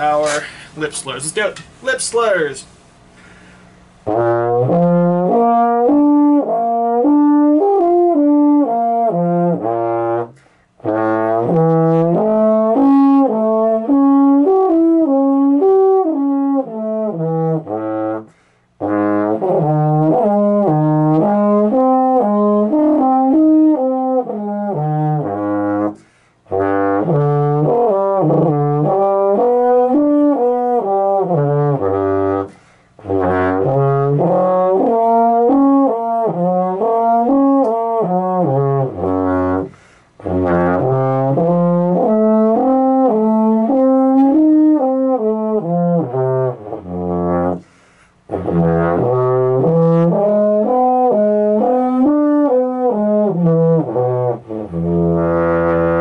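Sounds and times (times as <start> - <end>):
player breathing: 0.3 - 0.8, 3.1 - 3.9, 10.4 - 10.8, 18.3 - 18.8, 26.0 - 26.4, 32.5 - 33.0, 39.7 - 40.2, 47.6 - 48.3.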